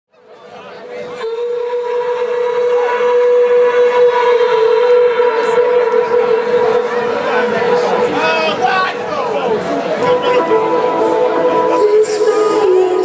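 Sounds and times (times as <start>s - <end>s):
crowd chatter: 0.1s - 13.0s
sustained synthesizer note: 0.8s - 8.2s, 10.0s - 13.0s.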